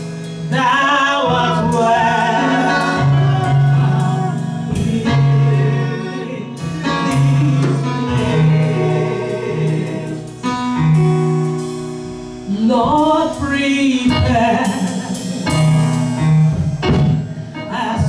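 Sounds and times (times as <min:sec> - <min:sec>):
held instrumental backing notes: 0:00.0 - 0:18.0
woman singing gospel song: 0:00.5 - 0:10.3, 0:12.5 - 0:15.4, 0:17.6 - 0:18.0.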